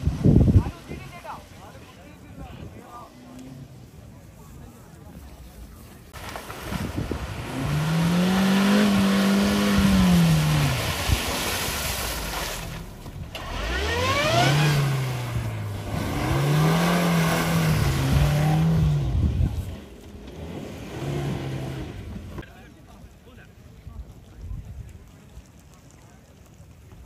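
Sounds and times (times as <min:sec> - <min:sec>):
car engine revving: 0:06.2 - 0:22.4.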